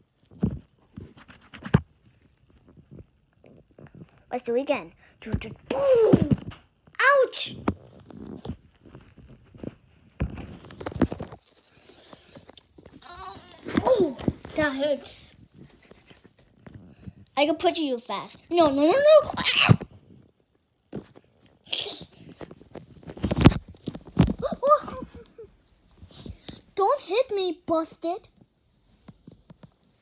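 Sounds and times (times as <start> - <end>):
rustling: 7.6 - 17.4
high vocal squeal: 13.0 - 14.0, 21.7 - 22.3.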